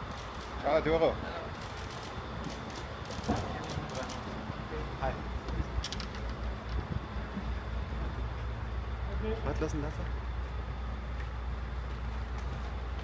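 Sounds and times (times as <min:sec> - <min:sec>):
steady low rumble: 0:00.0 - 0:13.0
people walking: 0:01.4 - 0:08.6, 0:10.4 - 0:13.0.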